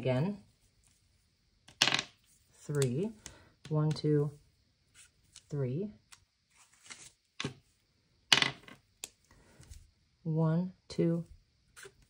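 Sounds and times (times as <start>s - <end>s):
objects knocking on wooden table: 8.3s - 8.8s.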